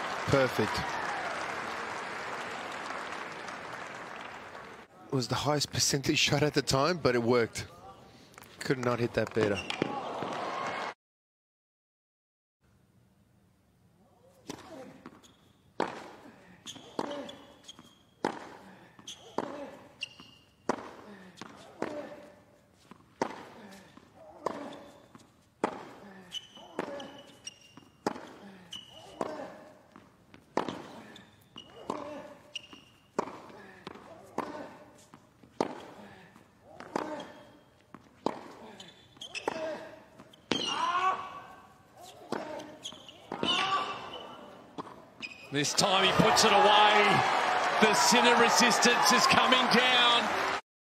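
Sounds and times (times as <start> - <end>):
tennis ball bouncing: 14.5 - 22.1, 22.8 - 26.0, 26.7 - 28.4, 29.0 - 40.8, 42.1 - 45.3.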